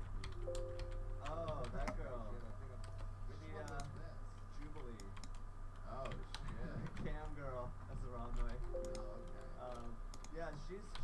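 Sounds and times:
keyboard keys clicking: 0:00.0 - 0:04.0, 0:04.6 - 0:07.4, 0:08.3 - 0:11.0.

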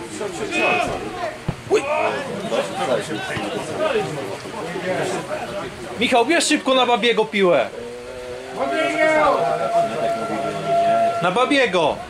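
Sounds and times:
men shouting: 0:00.1 - 0:04.2, 0:07.8 - 0:12.0.

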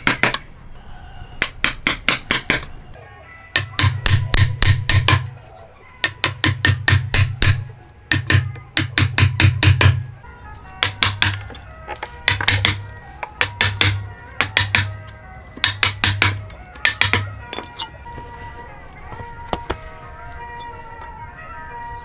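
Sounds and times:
hammer striking wood chisel: 0:00.0 - 0:00.4, 0:01.4 - 0:02.7, 0:03.5 - 0:05.4, 0:06.0 - 0:10.2, 0:10.8 - 0:17.9, 0:19.1 - 0:19.9.

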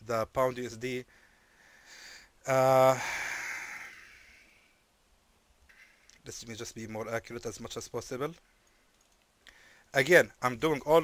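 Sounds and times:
man sighing: 0:01.6 - 0:04.8.

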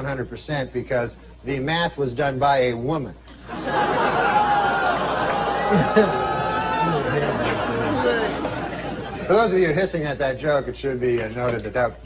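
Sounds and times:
audience hissing: 0:03.4 - 0:09.7.

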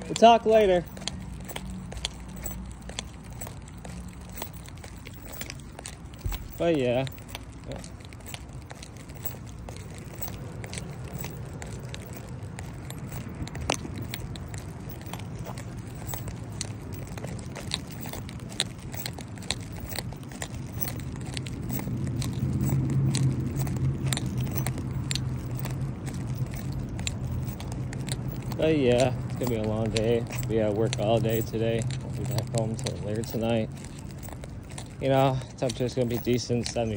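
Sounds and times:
footsteps and phone handling: 0:00.0 - 0:36.9
traffic rumble: 0:00.0 - 0:36.9
vehicle engine hum: 0:00.0 - 0:36.9.

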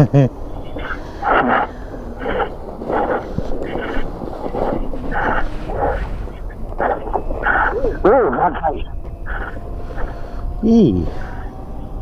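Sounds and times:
person laughing in breathy bursts: 0:00.0 - 0:03.2
wind rumble on microphone: 0:00.0 - 0:12.0.

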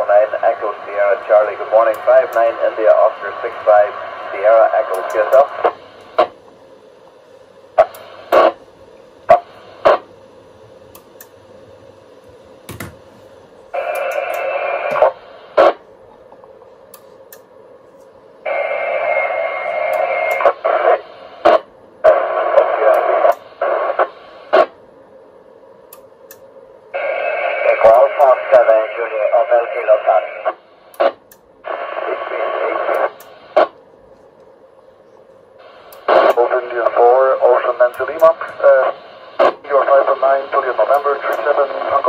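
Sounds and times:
noisy radio speech: 0:00.0 - 0:06.3, 0:07.8 - 0:08.6, 0:13.8 - 0:15.8, 0:18.5 - 0:24.7, 0:27.0 - 0:33.8, 0:35.6 - 0:42.0
radio squelch burst: 0:00.0 - 0:06.3, 0:07.8 - 0:08.6, 0:13.8 - 0:15.8, 0:18.5 - 0:24.7, 0:27.0 - 0:33.8, 0:35.6 - 0:42.0.

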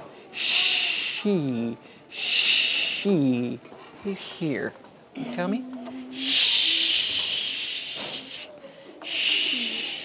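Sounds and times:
person saying long shhh: 0:00.3 - 0:01.4, 0:02.1 - 0:03.3, 0:06.1 - 0:10.0.

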